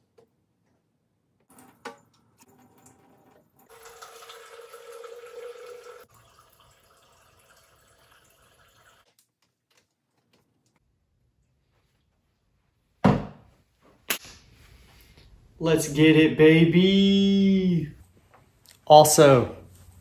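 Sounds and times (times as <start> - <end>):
water running from faucet: 1.5 - 9.1
water trickling: 1.5 - 9.1.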